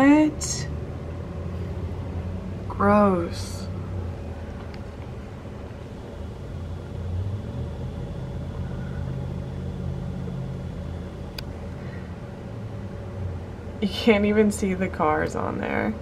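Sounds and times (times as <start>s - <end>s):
air conditioner humming: 0.0s - 16.0s.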